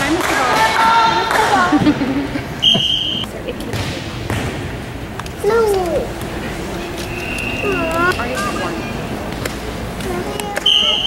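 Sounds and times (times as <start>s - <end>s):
referee's whistle blast: 2.6s - 3.3s, 10.6s - 11.0s.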